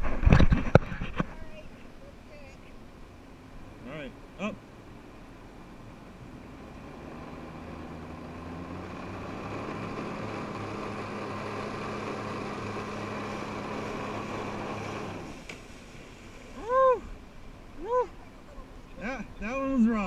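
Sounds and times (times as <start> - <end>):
watercraft engine revving: 3.2 - 17.9
water jets hissing: 9.4 - 16.7.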